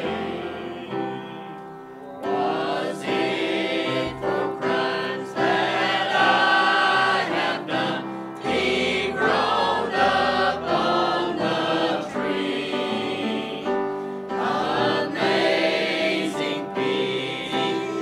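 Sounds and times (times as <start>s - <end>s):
choir singing a hymn: 0.0s - 18.0s
breath: 13.9s - 14.3s.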